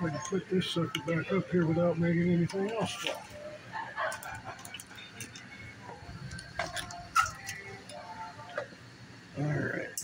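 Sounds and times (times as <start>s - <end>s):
faint muffled voices: 0.0s - 10.0s.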